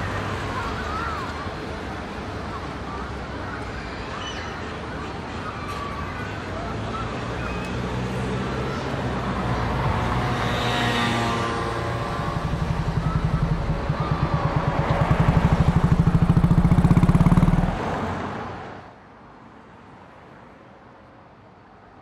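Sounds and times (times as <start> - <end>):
motorcycle exhaust passing: 10.3 - 18.0.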